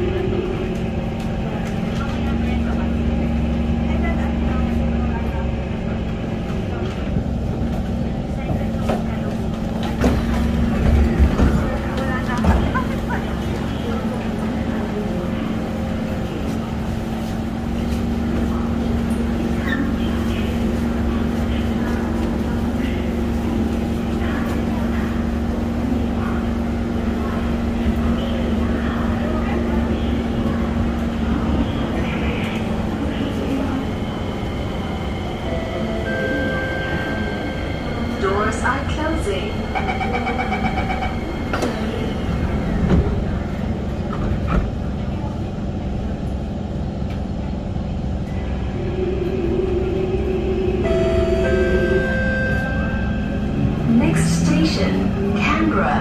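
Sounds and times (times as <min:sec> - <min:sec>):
passenger voices: 0:00.0 - 0:56.0
train hum and rumble: 0:00.0 - 0:56.0
train doors shutting: 0:08.4 - 0:15.4, 0:17.8 - 0:45.0, 0:49.2 - 0:55.8
door warning beeps: 0:39.7 - 0:41.3.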